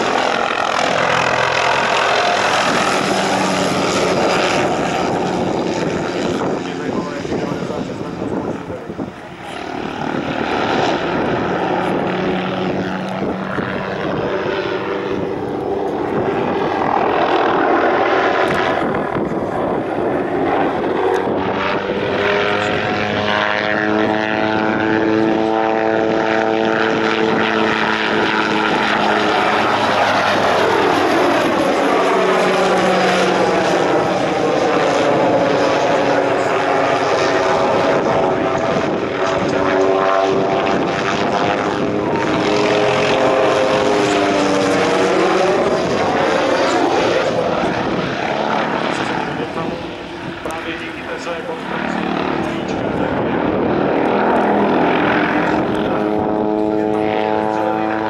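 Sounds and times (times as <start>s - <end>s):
helicopter engine and rotor: 0.0s - 58.0s.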